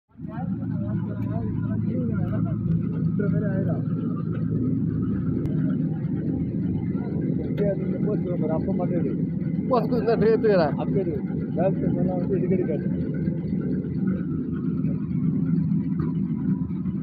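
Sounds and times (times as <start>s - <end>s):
people talking: 0.2s - 15.0s.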